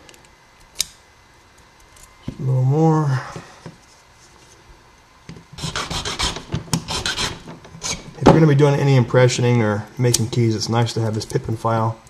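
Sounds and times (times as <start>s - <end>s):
file rasping on metal key: 5.6s - 8.0s.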